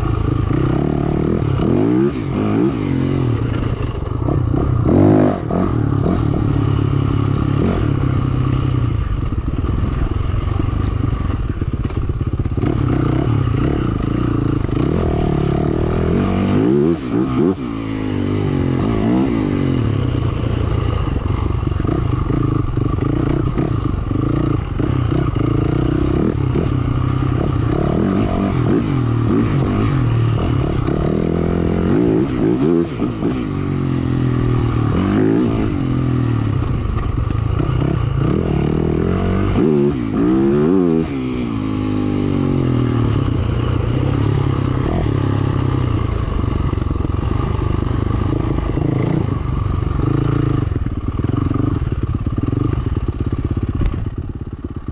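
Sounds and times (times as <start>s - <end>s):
dirt bike engine revving: 0.0s - 54.2s.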